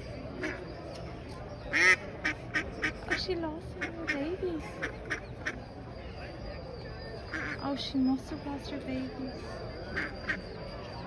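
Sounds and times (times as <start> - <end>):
duck quacking: 1.7 - 3.2, 7.3 - 7.6.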